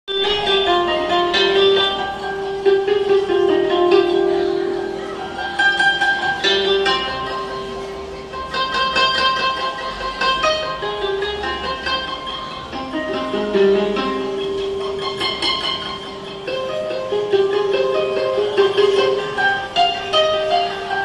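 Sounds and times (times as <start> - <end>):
koto plucked strings: 0.1 - 21.0.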